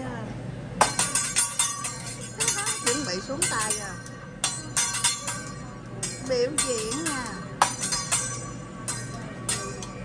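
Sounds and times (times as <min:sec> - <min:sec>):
restaurant background music: 0:00.7 - 0:10.0
metal utensils clinking: 0:00.8 - 0:10.0
voices: 0:01.9 - 0:10.0.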